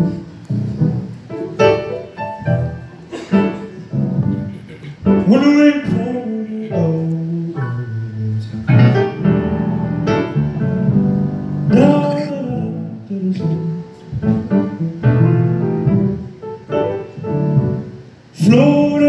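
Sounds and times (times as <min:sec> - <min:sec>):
grand piano playing chords: 0:00.0 - 0:19.0
person singing: 0:04.6 - 0:08.7, 0:11.7 - 0:14.1.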